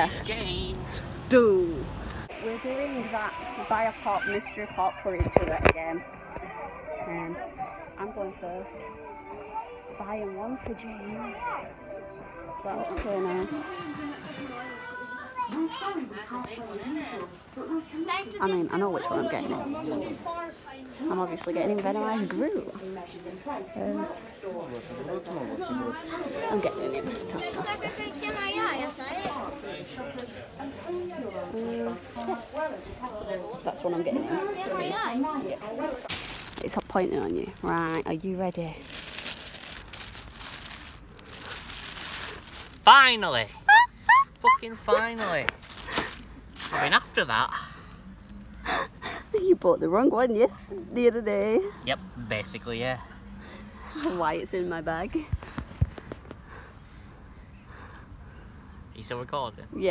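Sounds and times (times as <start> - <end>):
childlike voices talking: 8.7 - 21.0, 25.6 - 29.8, 33.8 - 36.0
plastic bag crinkling: 36.0 - 43.4, 45.5 - 47.0.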